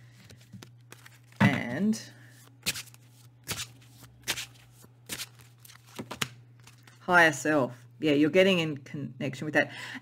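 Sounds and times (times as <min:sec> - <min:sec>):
cards being shuffled: 0:00.1 - 0:01.4, 0:02.4 - 0:07.0.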